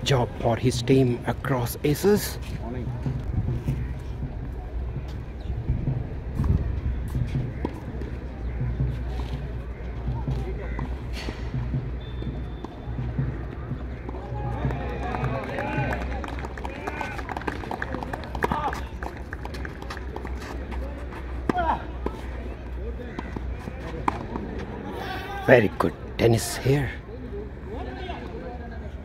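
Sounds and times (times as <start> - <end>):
players' footsteps: 0.0 - 26.0.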